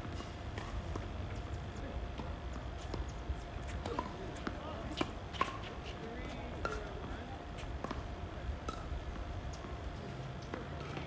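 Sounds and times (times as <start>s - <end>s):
taps on hard court: 6.6s - 6.9s.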